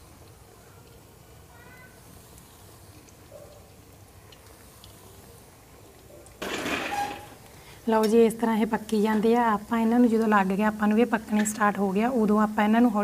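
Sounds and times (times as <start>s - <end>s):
chips sizzling in hot oil: 0.0s - 13.0s.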